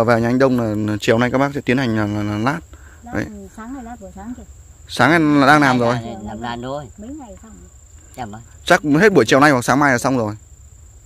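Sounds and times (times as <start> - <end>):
insects calling high tone: 0.0 - 11.0
person talking: 5.0 - 7.6.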